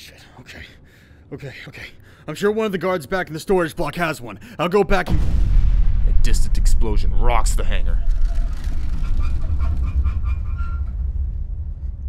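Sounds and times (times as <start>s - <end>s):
deep explosion rumble: 5.0s - 12.0s.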